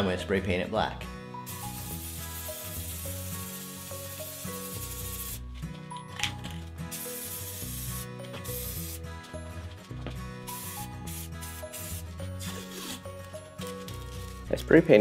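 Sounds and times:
spray paint can hissing: 0:01.5 - 0:05.4, 0:06.9 - 0:09.1, 0:10.4 - 0:13.2.

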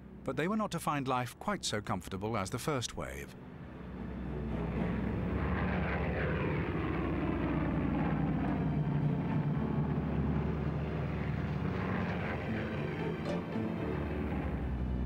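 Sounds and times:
propeller aircraft engines running: 0:03.4 - 0:15.0.

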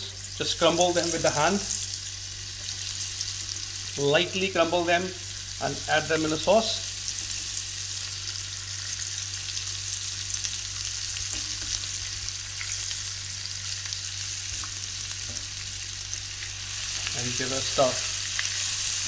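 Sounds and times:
oil sizzling in a pan: 0:00.0 - 0:19.0.

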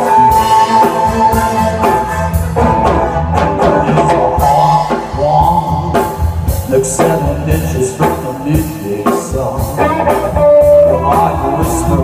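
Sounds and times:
drum kit: 0:00.0 - 0:12.0
electric guitar: 0:00.0 - 0:12.0
rock band through pa: 0:00.0 - 0:12.0.

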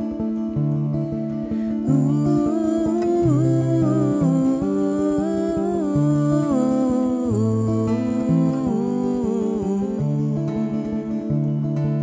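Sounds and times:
acoustic guitar picking: 0:00.0 - 0:12.0
woman humming: 0:01.8 - 0:11.0.

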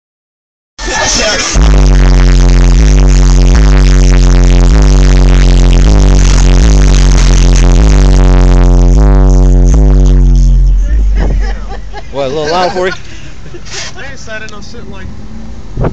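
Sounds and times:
loud bass-heavy car music: 0:00.8 - 0:13.6.

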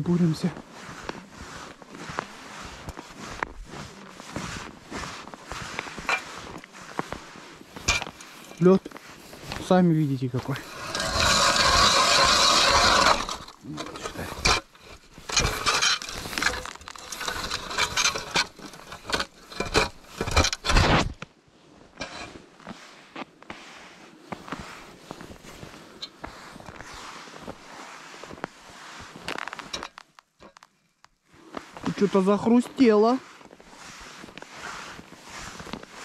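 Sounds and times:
ice auger grinding through ice: 0:07.8 - 0:21.2, 0:31.8 - 0:36.0.

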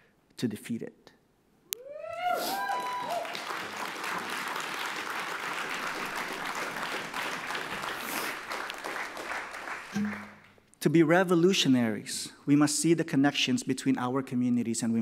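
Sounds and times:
person whooping: 0:01.8 - 0:03.4
audience applause: 0:02.3 - 0:10.4.

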